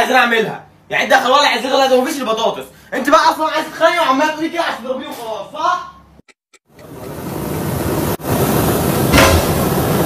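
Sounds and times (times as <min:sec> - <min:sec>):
kitchen fire rushing hiss: 0:06.8 - 0:10.0.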